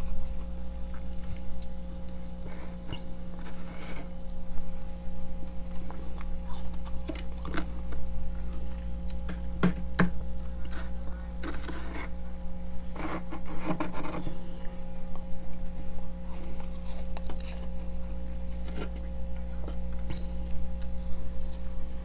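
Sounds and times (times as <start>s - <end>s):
steady low hum: 0.0s - 22.0s
spoon scraping frost: 2.4s - 4.2s, 10.6s - 12.2s, 12.8s - 14.4s.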